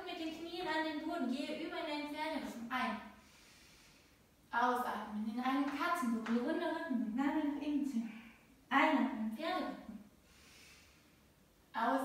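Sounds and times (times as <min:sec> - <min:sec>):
woman speaking: 0:00.0 - 0:03.1, 0:04.5 - 0:10.0, 0:11.8 - 0:12.0.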